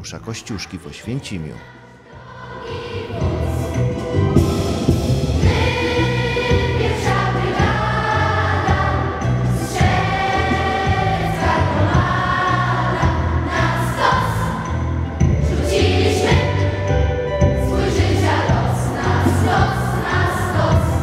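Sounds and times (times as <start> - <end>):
choir singing with instruments: 0.6 - 21.0.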